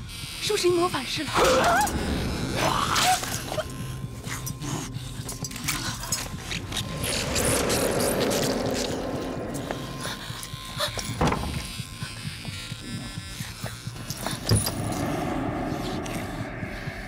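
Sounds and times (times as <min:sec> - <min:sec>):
dramatic film music: 0:00.6 - 0:17.0.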